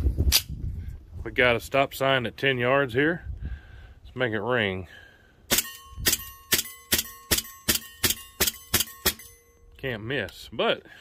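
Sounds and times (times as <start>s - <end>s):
bb pistol shots: 5.5s - 9.4s
steel target ringing: 5.5s - 9.8s.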